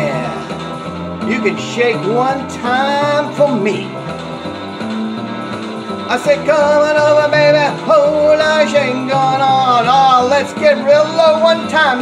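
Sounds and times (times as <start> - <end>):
instrumental rock and roll music: 0.0 - 12.0
steady bass line: 0.0 - 12.0.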